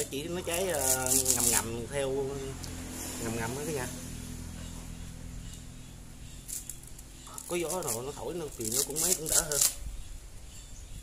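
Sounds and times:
coconut husk fibres rustling: 0.0 - 4.1, 6.3 - 9.9
steady low hum: 0.0 - 11.0.

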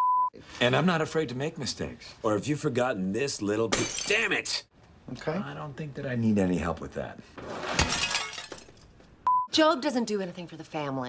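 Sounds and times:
glass breaking: 3.7 - 4.3, 7.4 - 9.0.

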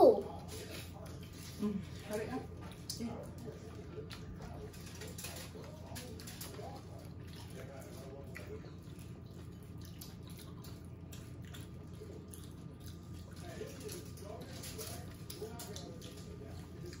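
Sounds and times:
low room hum: 0.0 - 17.0
faint chewing: 0.1 - 17.0.

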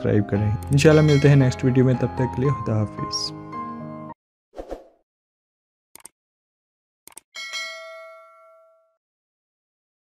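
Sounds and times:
short clicks: 6.0 - 6.2, 7.1 - 7.3
bright bell-like ding: 7.4 - 9.0.

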